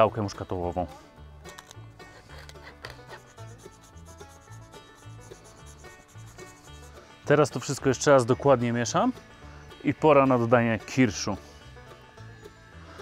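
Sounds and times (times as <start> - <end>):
quiet background music: 0.0 - 13.0
pepper mill grinding: 1.5 - 7.0
nutmeg rasping on grater: 2.1 - 7.1.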